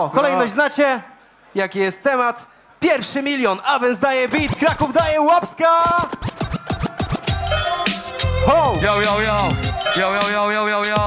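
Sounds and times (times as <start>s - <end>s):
dj scratching: 4.2s - 8.3s
hip-hop beat with heavy bass: 4.4s - 5.2s, 5.8s - 11.0s.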